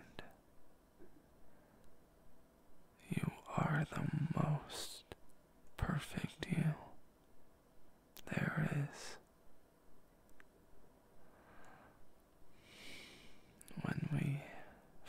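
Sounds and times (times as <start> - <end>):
man whispering: 0.0 - 0.4, 3.0 - 5.2, 5.8 - 7.0, 8.2 - 9.3, 13.6 - 15.0.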